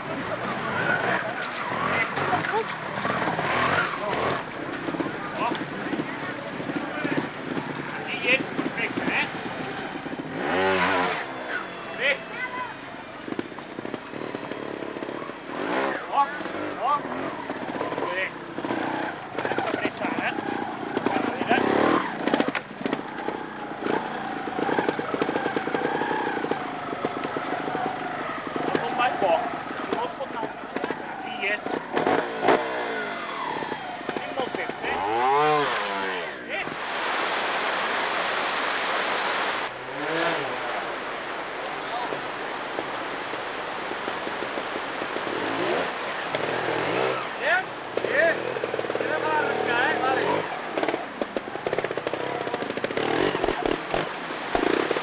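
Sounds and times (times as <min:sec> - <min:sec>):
murmur of spectators' voices: 0:00.0 - 0:19.6
motorcycle revving: 0:00.0 - 0:55.0.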